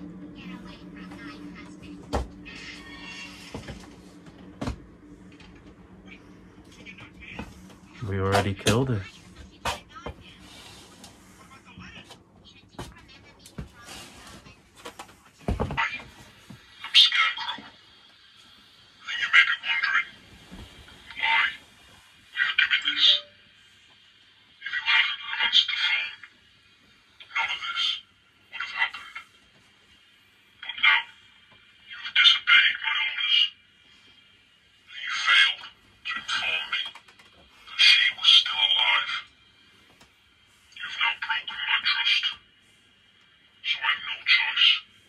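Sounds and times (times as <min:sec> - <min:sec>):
tinny voice through small speaker: 0:00.0 - 0:03.8, 0:06.1 - 0:17.8, 0:19.0 - 0:20.3, 0:21.0 - 0:23.4, 0:24.6 - 0:26.3, 0:27.2 - 0:29.4, 0:30.6 - 0:33.6, 0:34.9 - 0:39.4, 0:40.7 - 0:42.5, 0:43.6 - 0:45.0.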